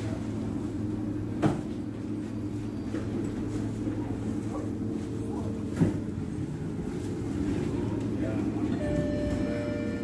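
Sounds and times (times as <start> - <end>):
train running hum: 0.0 - 10.0.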